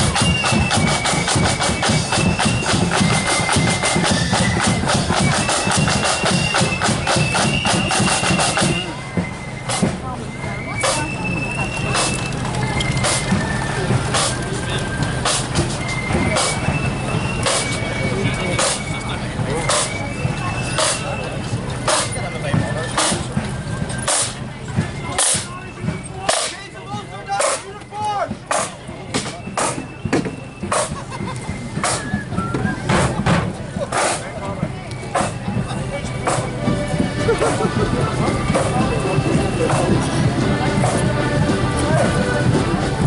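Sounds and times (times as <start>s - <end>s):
high flute melody: 0.0s - 43.0s
snare drums: 0.0s - 43.0s.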